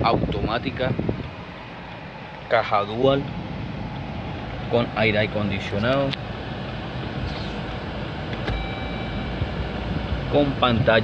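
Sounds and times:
air conditioning running: 0.0 - 11.0
car engine idling: 0.0 - 11.0
short electronic tone: 8.6 - 9.6.

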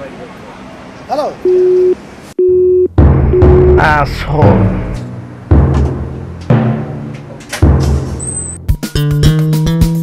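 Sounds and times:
telephone busy tone beeps: 1.4 - 3.8
low drum hit of film music: 3.0 - 8.2.

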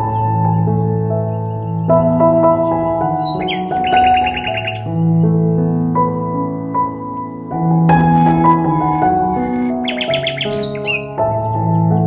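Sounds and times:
bird chirps: 0.0 - 5.2, 7.2 - 12.0
calm ambient music: 0.0 - 12.0.

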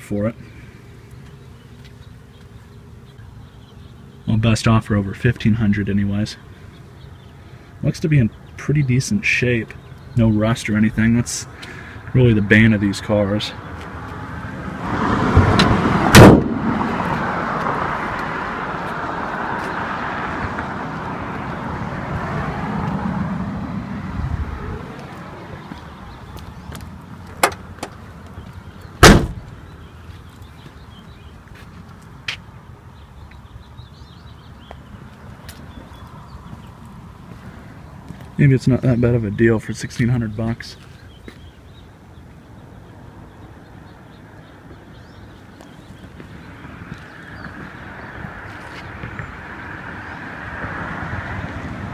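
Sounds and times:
car door shutting: 15.4 - 16.6, 27.3 - 28.0, 29.0 - 29.5
car hood slamming: 15.4 - 16.6, 27.4 - 27.9, 29.0 - 29.5.

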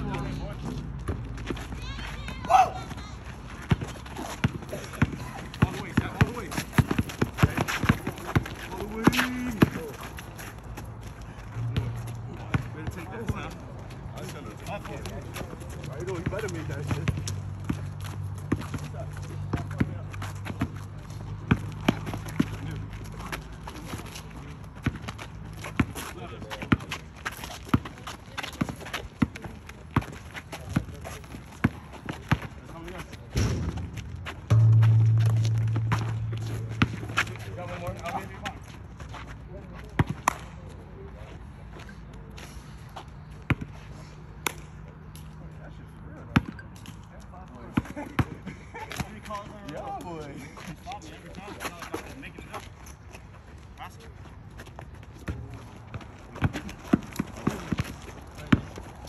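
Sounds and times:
basketball bouncing on asphalt: 0.0 - 10.0, 11.6 - 24.1, 24.7 - 38.6, 39.8 - 40.4, 43.4 - 43.7, 54.7 - 59.0
distant players' voices: 0.0 - 46.7
steady low hum: 33.8 - 37.9.

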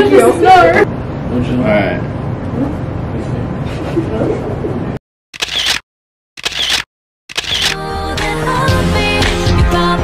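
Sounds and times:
camera shutter snap: 5.4 - 5.8, 6.4 - 7.8.

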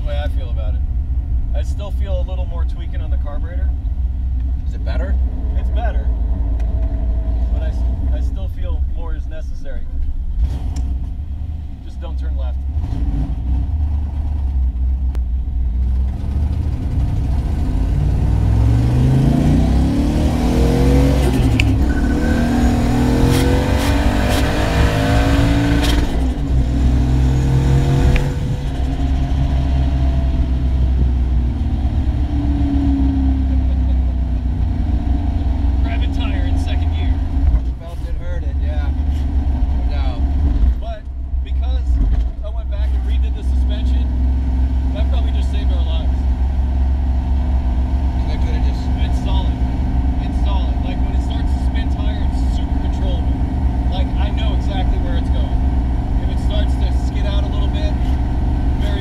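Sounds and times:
car engine accelerating: 0.0 - 59.0.

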